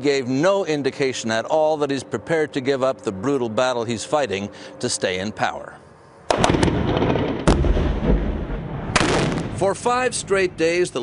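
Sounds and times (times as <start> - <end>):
gunfire: 6.3 - 9.7
heavy explosion with rumble: 6.3 - 10.5.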